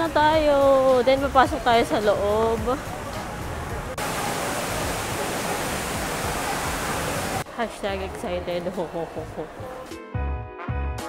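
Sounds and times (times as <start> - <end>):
fountain water splashing: 1.7 - 7.4.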